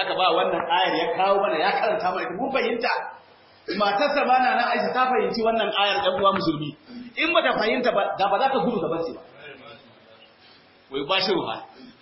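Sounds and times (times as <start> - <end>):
man speaking: 0.0 - 10.3.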